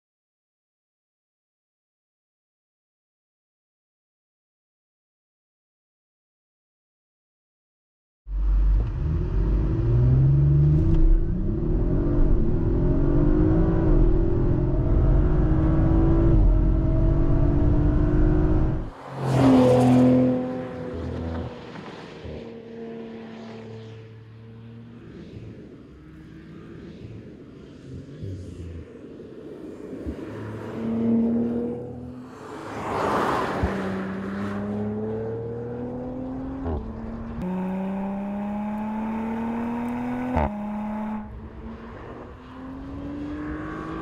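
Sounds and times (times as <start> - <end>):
car engine accelerating: 8.3 - 44.0
car passing loudly: 17.8 - 44.0.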